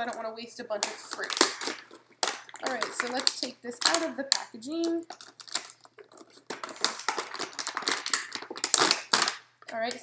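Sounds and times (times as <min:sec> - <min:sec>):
plastic tray crinkling: 0:00.0 - 0:10.0.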